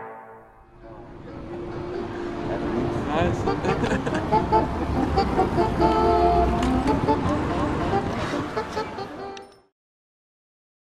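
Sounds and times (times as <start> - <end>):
road traffic rumble: 0.7 - 9.5
people talking: 2.5 - 3.9.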